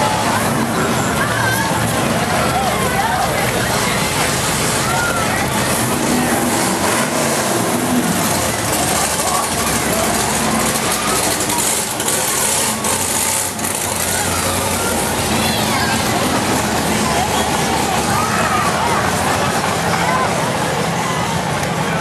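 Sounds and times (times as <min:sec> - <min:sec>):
car engines cruising past: 0:00.0 - 0:22.0
crowd chatter: 0:00.0 - 0:22.0.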